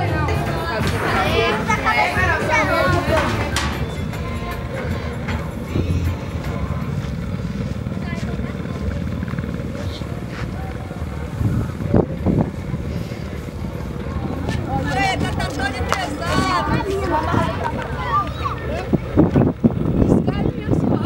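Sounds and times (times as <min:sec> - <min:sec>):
engine running: 0:00.0 - 0:21.0
voices: 0:00.0 - 0:21.0.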